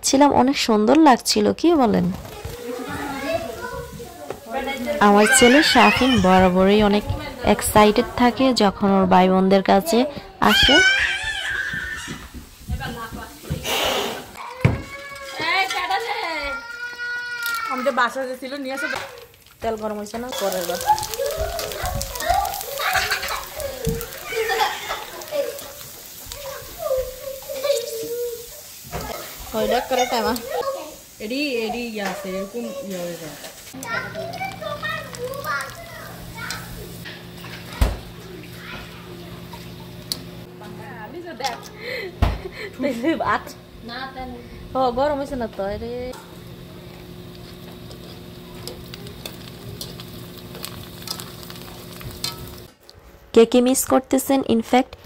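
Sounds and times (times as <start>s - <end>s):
children talking and playing: 1.7s - 51.5s.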